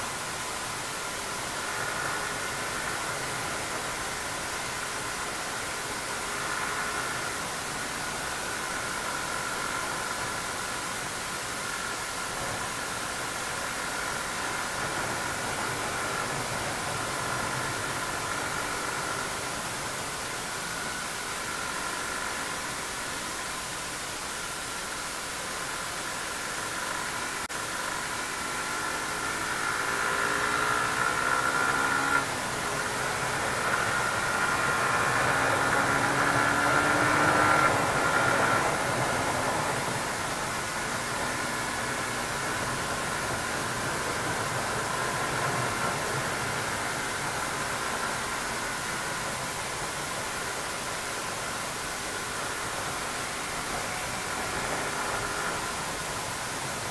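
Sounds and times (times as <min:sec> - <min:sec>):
motorcycle engine running: 0:25.4 - 0:56.9.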